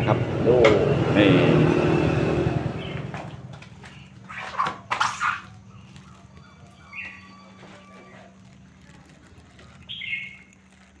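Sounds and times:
bird chirp: 2.7s - 8.3s, 9.4s - 10.9s.

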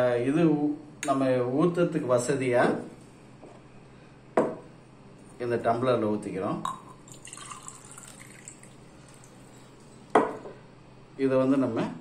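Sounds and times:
liquid trickling into glass: 6.6s - 10.0s.

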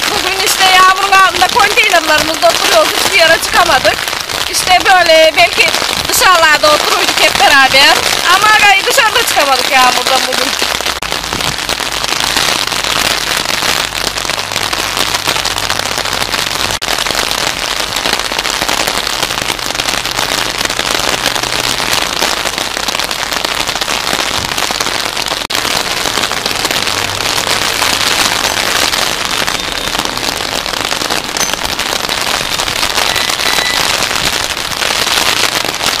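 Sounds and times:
rain on wet paving: 0.0s - 36.0s.

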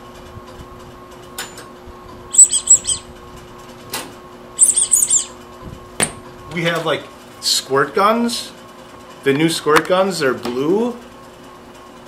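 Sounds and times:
rubber duck squeaking: 2.3s - 3.1s, 4.6s - 5.4s.

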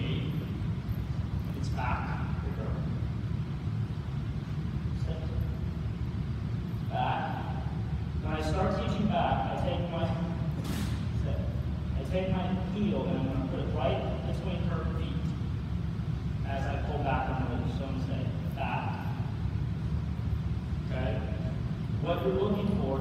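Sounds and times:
low rumble of a large hall: 0.0s - 23.0s.

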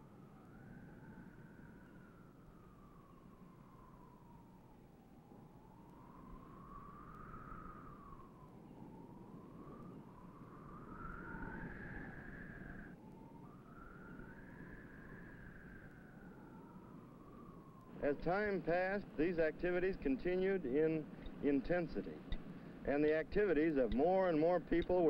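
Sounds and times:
old film soundtrack hiss: 0.0s - 25.0s.

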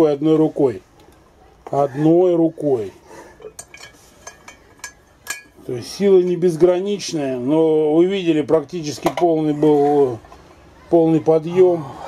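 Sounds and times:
metal clinks and taps: 3.4s - 5.6s.

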